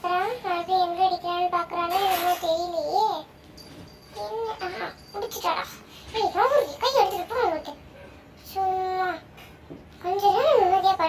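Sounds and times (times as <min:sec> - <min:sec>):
child singing a chant: 0:00.0 - 0:03.3, 0:10.0 - 0:11.0.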